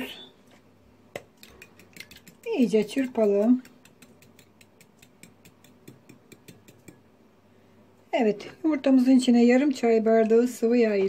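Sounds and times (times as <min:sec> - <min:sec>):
fork beating eggs in bowl: 0:01.1 - 0:07.2.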